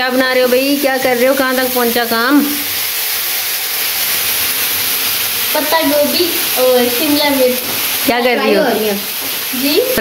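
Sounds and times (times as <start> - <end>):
pasta sizzling in a pot: 0.0 - 10.0
person speaking: 5.5 - 10.0.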